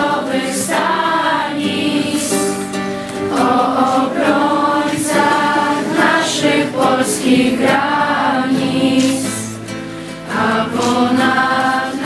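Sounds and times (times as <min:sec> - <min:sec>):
strummed acoustic guitars: 0:00.0 - 0:12.0
young voices singing together: 0:00.0 - 0:12.0.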